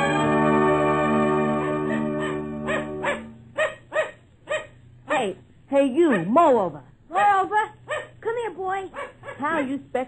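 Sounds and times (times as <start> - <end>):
organ music chord: 0.0 - 3.5
dog barking: 2.2 - 5.4, 6.0 - 6.5, 7.1 - 8.2, 8.9 - 9.6.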